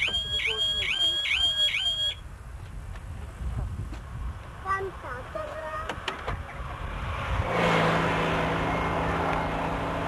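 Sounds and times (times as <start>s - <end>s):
car alarm siren swooping: 0.0s - 2.2s.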